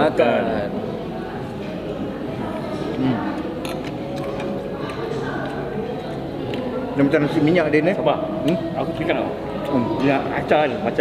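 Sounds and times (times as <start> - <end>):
cutlery clinking against plates: 3.6 - 5.6.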